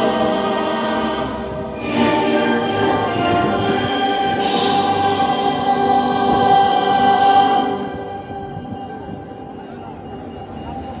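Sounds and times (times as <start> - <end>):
choir singing over loudspeakers: 0.0 - 11.0.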